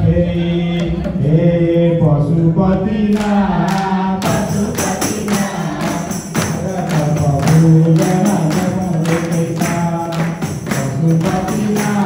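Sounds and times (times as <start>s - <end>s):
men chanting devotional song: 0.0s - 12.0s.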